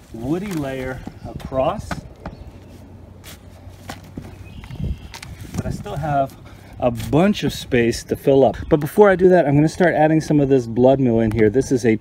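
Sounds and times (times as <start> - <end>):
mulch scraping and rustling: 0.0 - 7.4.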